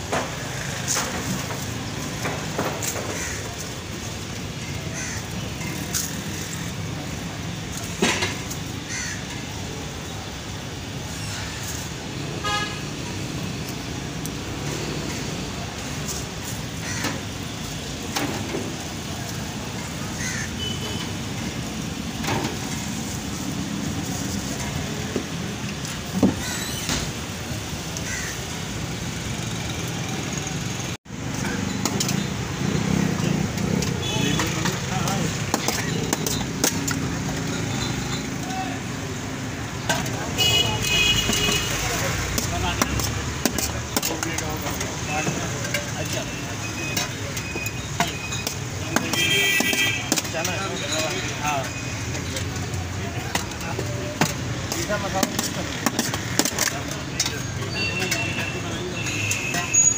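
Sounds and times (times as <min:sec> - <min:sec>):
traffic passing: 0:00.0 - 0:59.9
people talking: 0:33.6 - 0:39.2, 0:39.8 - 0:59.9.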